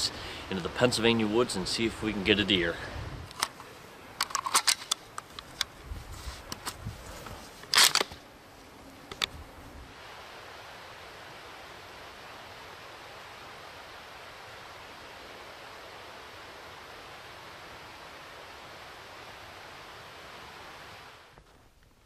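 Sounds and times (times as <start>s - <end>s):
steady outdoor hiss: 0.0s - 22.0s.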